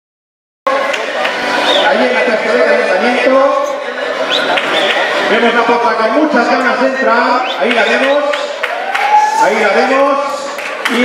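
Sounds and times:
voices in echoing hall: 0.7 - 11.0.

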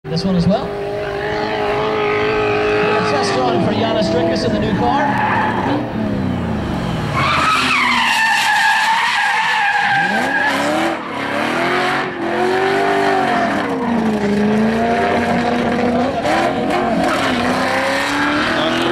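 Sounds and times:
car engines revving hard: 0.1 - 18.9
tyres squealing and skidding: 0.6 - 18.9.

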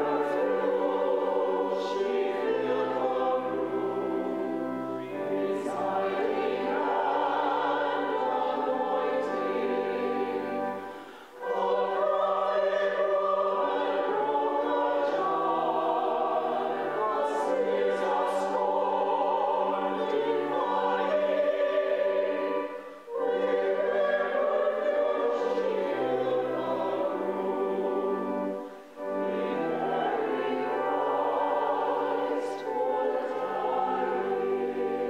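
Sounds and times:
choir breaths: 0.0 - 35.0
church choir singing: 0.0 - 35.0.

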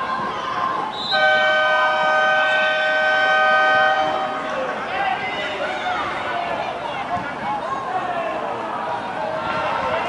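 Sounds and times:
two-tone horn blast: 1.1 - 4.6.

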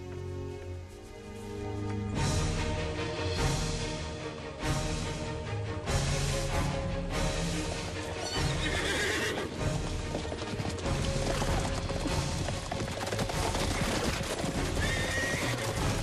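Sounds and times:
horse whinnying: 8.2 - 9.6, 13.6 - 16.0
horses galloping hoofbeats: 8.2 - 16.0.

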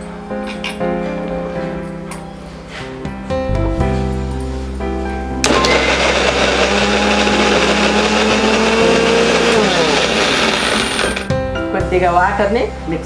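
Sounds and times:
electric blender running: 5.4 - 11.3.

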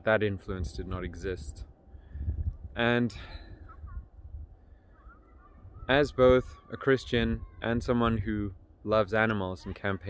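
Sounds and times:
man speaking: 0.0 - 1.6, 2.8 - 3.4, 5.9 - 10.0
wind buffeting microphone: 0.0 - 8.7.

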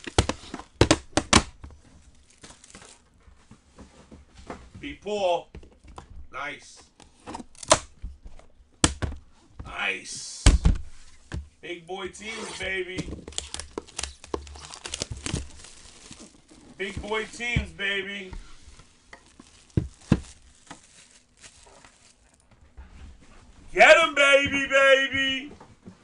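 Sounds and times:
handling knocks and scraping: 10.6 - 26.0.

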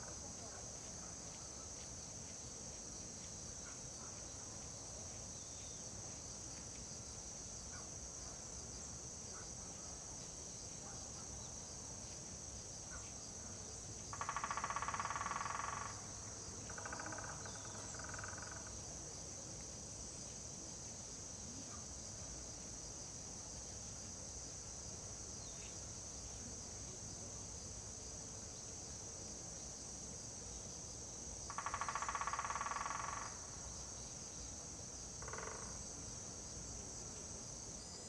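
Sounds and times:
buzzy insect call: 0.0 - 38.0
crickets chirping chorus: 0.0 - 38.0.

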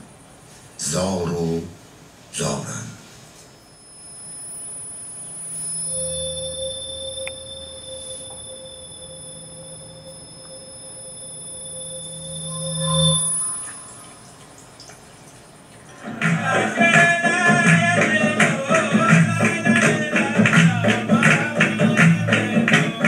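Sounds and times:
steady high tones: 3.4 - 23.0
low hum: 3.6 - 16.9.

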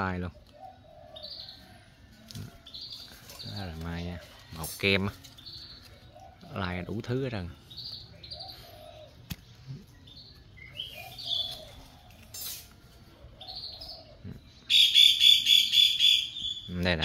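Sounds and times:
birds chirping: 0.0 - 17.0
rapid repeated high bird notes: 14.6 - 17.0.

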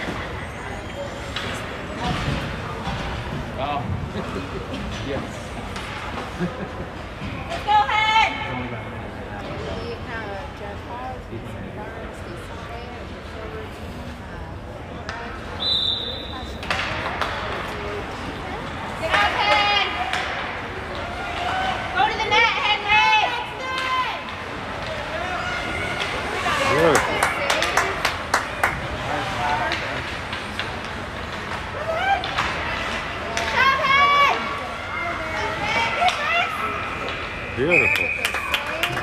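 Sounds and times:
hockey sticks and puck clacking: 4.3 - 6.4, 16.6 - 39.0
referee's whistle: 15.6 - 16.5, 37.7 - 38.4.

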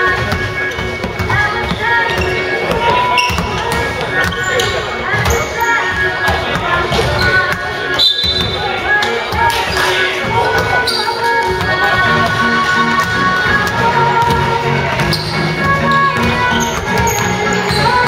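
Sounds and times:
background music: 0.0 - 18.0
basketball bouncing: 0.0 - 18.0
players' voices: 0.0 - 18.0
shoe squeaks on court: 0.3 - 6.0, 6.8 - 11.5, 14.9 - 18.0.

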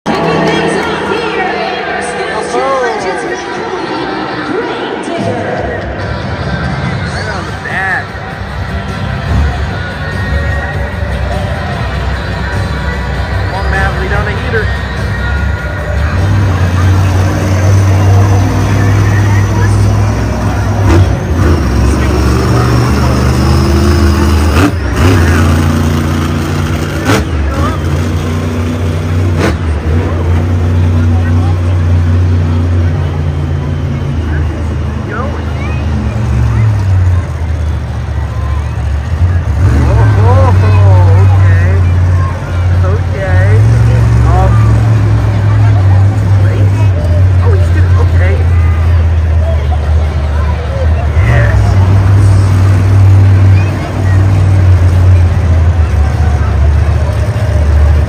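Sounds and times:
monster truck engine revving: 0.1 - 58.0.

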